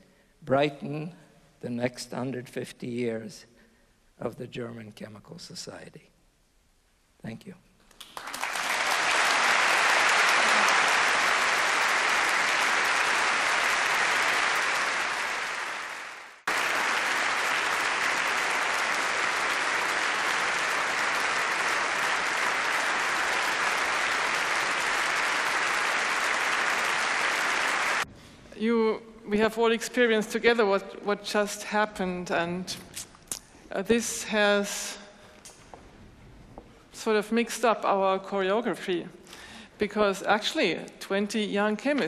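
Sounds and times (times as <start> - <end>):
large audience applauding: 7.9 - 28.1.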